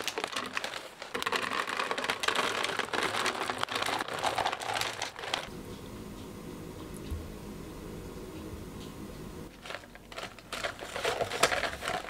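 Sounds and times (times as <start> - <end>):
kibble rattling into plastic jar: 0.0 - 5.5, 9.5 - 12.0
plastic bag crinkling: 0.0 - 5.5, 9.5 - 12.0.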